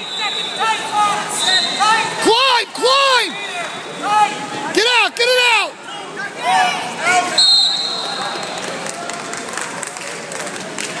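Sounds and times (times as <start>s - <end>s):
referee's whistle: 0.0s - 2.1s, 3.4s - 4.2s, 7.3s - 8.6s
crowd chatter: 0.0s - 11.0s.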